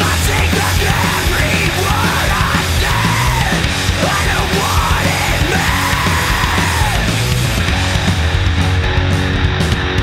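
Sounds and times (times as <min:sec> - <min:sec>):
heavy rock song with shouted vocals: 0:00.0 - 0:10.0.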